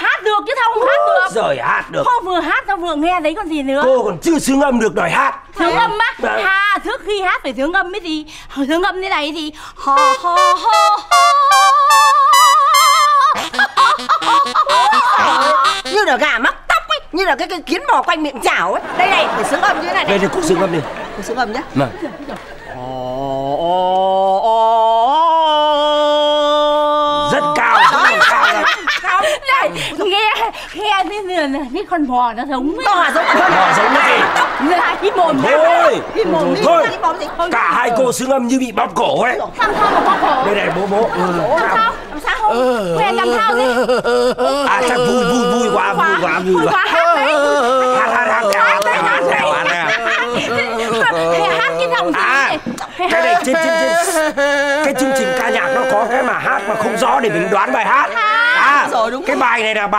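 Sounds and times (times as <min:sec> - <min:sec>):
voices talking: 0:39.4 - 0:59.5.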